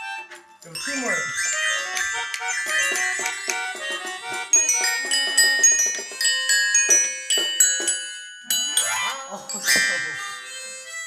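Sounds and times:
small toy instruments: 0.0s - 11.0s
toy xylophone notes: 0.0s - 11.0s.

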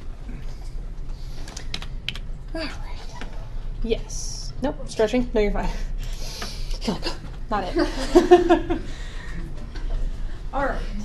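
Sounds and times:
computer keyboard clicks: 1.5s - 2.3s.

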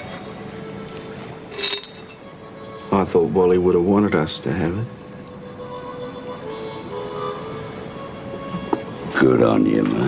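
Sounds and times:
soft background music: 0.0s - 10.0s
metal key clinking: 1.6s - 2.2s.

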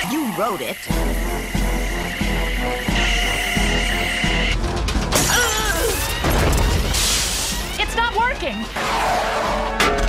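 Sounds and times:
cartoon music: 0.0s - 6.9s.

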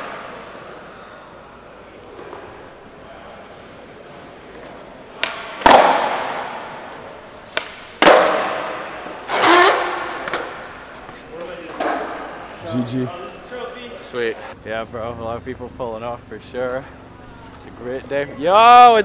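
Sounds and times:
skateboard tail pop: 5.2s - 6.4s
skateboard landing on concrete: 5.2s - 6.6s, 7.5s - 8.8s.

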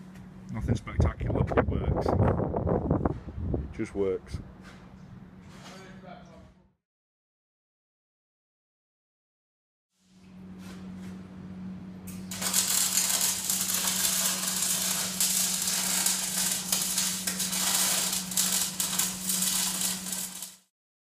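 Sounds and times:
steady low hum: 10.0s - 20.5s
electric arc welding crackling: 12.1s - 20.7s.

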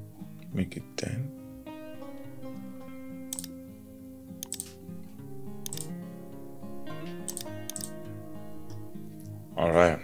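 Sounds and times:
background music with soft beat: 0.0s - 10.0s
computer keyboard key clicks: 3.3s - 3.5s, 4.4s - 4.8s, 5.6s - 5.9s, 7.3s - 7.9s.

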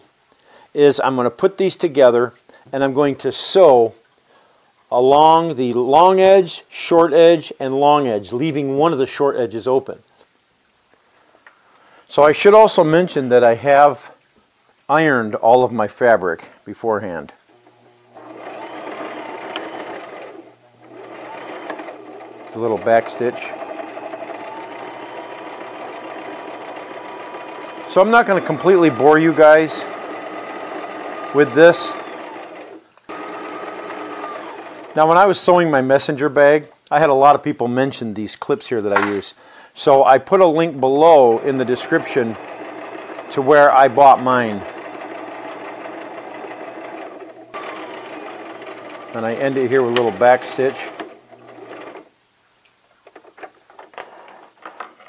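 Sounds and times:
sewing machine stitching: 17.6s - 35.0s, 41.2s - 52.1s.

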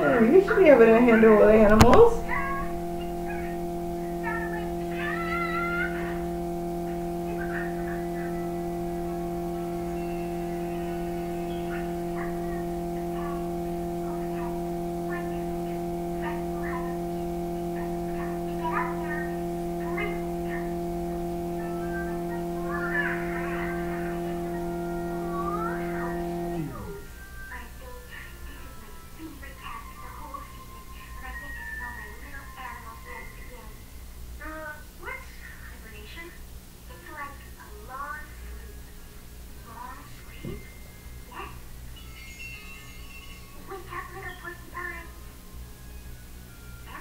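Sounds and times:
long held cartoon chord: 0.0s - 27.2s.

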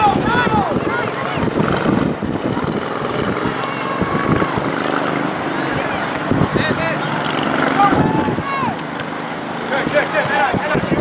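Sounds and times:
wind noise on microphone: 0.0s - 6.8s, 7.8s - 8.8s, 9.8s - 11.0s
voices calling: 0.0s - 11.0s
person shouting: 7.8s - 8.8s.

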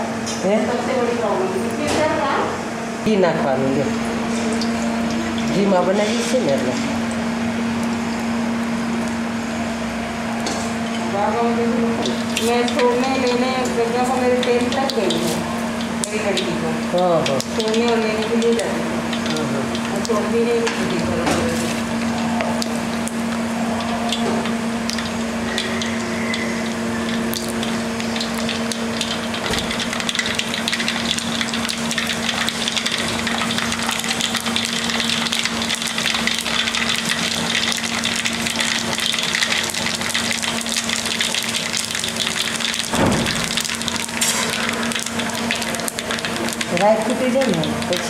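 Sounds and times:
seeds sizzling in hot oil: 7.9s - 48.0s.

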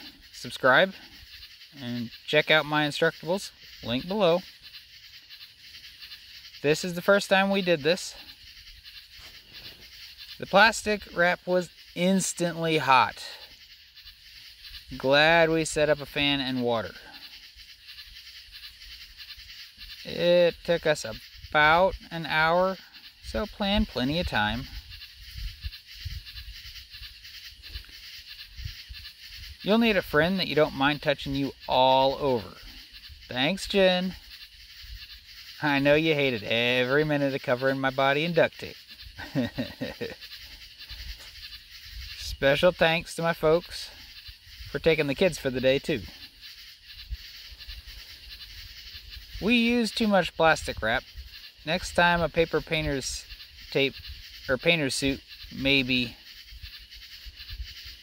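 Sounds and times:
high-pitched insect chorus: 0.0s - 58.0s
soft even hiss: 0.0s - 58.0s.

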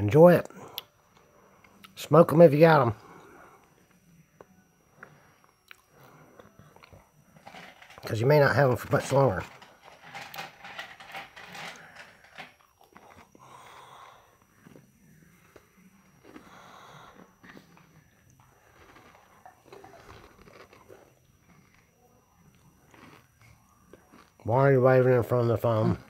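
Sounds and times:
breathing: 0.5s - 1.8s, 3.0s - 4.0s, 5.0s - 6.8s, 11.4s - 12.6s, 13.3s - 14.7s, 16.3s - 17.7s
close-up chewing: 12.6s - 24.4s.

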